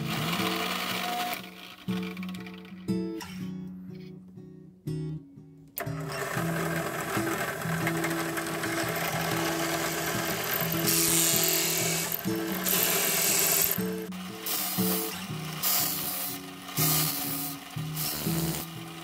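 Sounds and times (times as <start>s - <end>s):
drill press cutting wood: 0.0s - 2.7s, 5.8s - 19.0s
background music: 0.0s - 19.0s.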